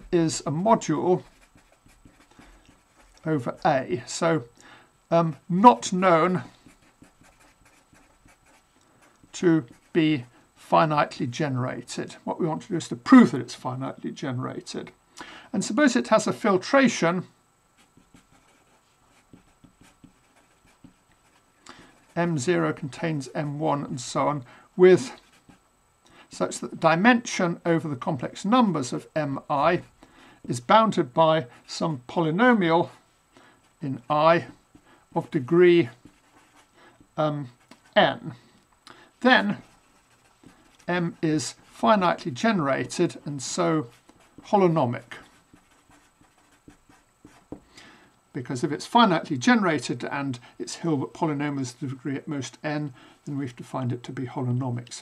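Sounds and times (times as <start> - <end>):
marker scratching on paper: 0.0 - 3.6, 6.5 - 10.0, 17.8 - 22.4, 34.0 - 36.8, 39.4 - 41.6, 43.8 - 47.6.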